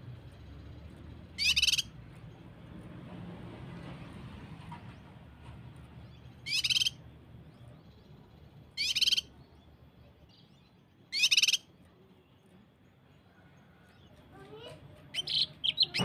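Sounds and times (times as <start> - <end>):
bird rapid-fire song bursts: 0.0 - 2.6, 6.0 - 12.4, 15.1 - 16.0.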